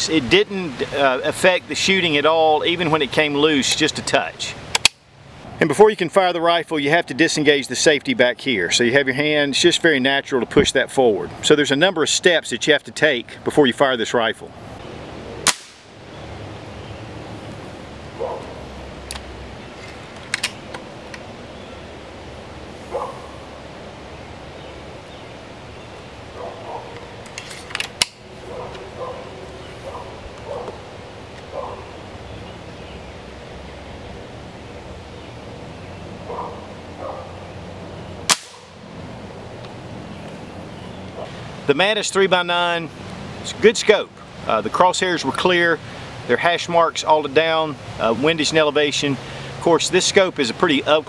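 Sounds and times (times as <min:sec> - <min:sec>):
air rifle cracks: 0:04.7 - 0:05.0, 0:15.4 - 0:15.9, 0:27.3 - 0:28.2, 0:38.3 - 0:38.8.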